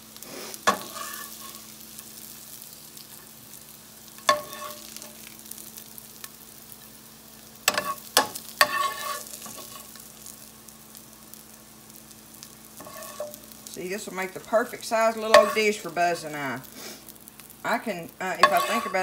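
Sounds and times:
vegetables sizzling in a skillet: 0:00.0 - 0:19.0
utensil clinking on pan: 0:04.3 - 0:04.8, 0:18.4 - 0:19.0.

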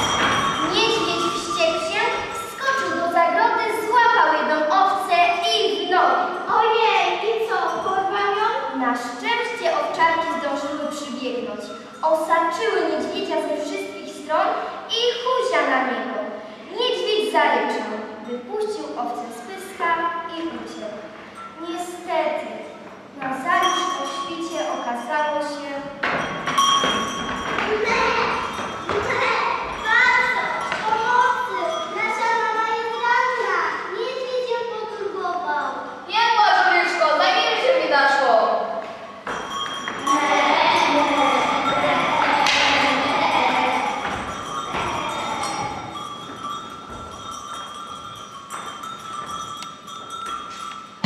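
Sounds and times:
children's voices singing notes: 0:00.0 - 0:04.0, 0:27.3 - 0:33.9, 0:39.9 - 0:47.0
children's voices: 0:00.0 - 0:26.0, 0:27.5 - 0:38.9, 0:40.0 - 0:46.2.

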